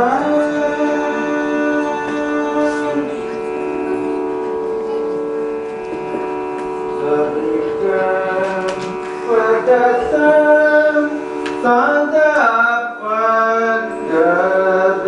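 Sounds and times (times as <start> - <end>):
person humming: 0.0 - 15.0
shruti box drone: 0.0 - 15.0.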